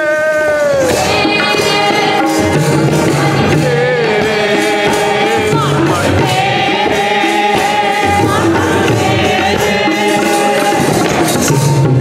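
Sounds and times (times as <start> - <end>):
people singing: 0.0 - 12.0
tabla drums: 0.6 - 12.0
harmonium chords: 0.9 - 12.0.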